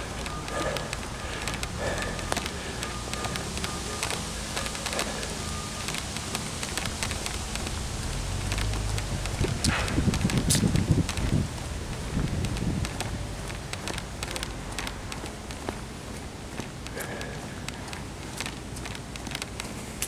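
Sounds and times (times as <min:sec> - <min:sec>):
wind buffeting microphone: 0:00.0 - 0:17.5
handling noise crackles: 0:00.0 - 0:20.0.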